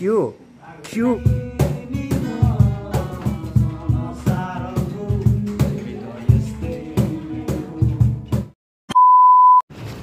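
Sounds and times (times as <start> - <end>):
music with drum beat: 1.2 - 8.6
electronic beep: 8.9 - 9.6.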